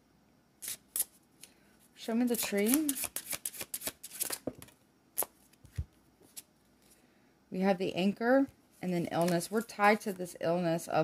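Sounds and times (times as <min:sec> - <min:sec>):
cards being shuffled: 0:02.4 - 0:06.5, 0:08.9 - 0:10.0.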